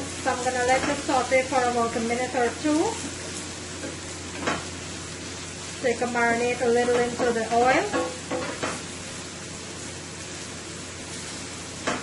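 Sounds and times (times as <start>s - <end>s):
onions sizzling in hot oil: 0.0s - 12.0s.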